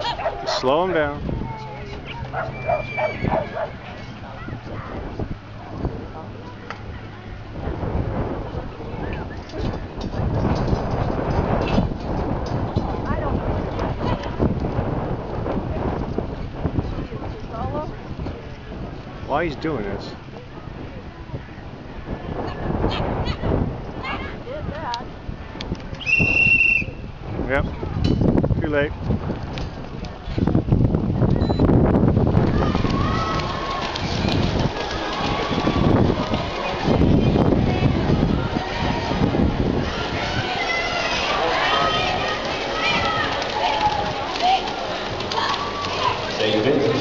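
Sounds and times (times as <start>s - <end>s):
faint voices: 0.0s - 28.0s, 29.7s - 47.0s
wind buffeting microphone: 0.0s - 47.0s
whistle blast: 26.0s - 27.0s.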